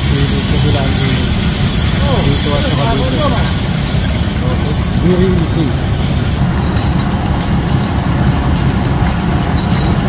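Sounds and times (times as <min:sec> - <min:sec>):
machine motors humming: 0:00.0 - 0:10.0.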